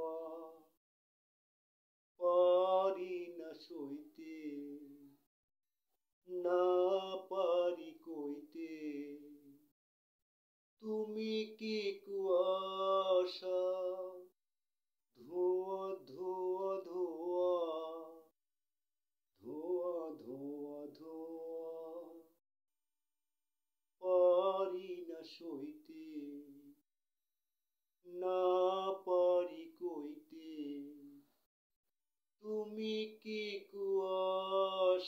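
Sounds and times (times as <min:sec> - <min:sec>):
man singing unaccompanied: 0:02.2 - 0:05.1, 0:06.3 - 0:09.5, 0:10.8 - 0:14.3, 0:15.2 - 0:18.3, 0:19.4 - 0:22.4, 0:24.0 - 0:26.8, 0:28.0 - 0:31.2, 0:32.4 - 0:35.0.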